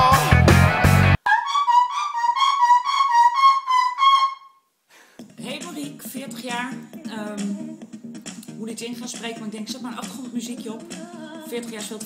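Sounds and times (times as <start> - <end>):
loud rock music: 0.0 - 1.2
harmonica trilling high tune: 1.2 - 4.7.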